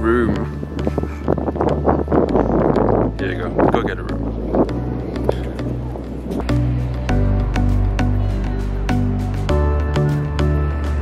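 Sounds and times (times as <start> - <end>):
wind buffeting microphone: 0.0 - 9.3.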